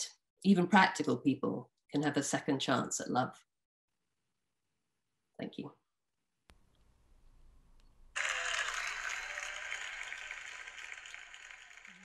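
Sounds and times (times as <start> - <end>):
faint whoop: 8.2 - 11.1
audience applause: 8.2 - 12.0.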